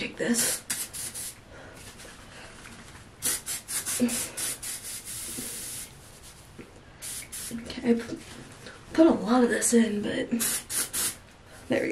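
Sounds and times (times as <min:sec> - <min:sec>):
aerosol spray hissing: 0:00.4 - 0:01.4, 0:03.2 - 0:06.0, 0:07.0 - 0:07.6, 0:10.4 - 0:11.2.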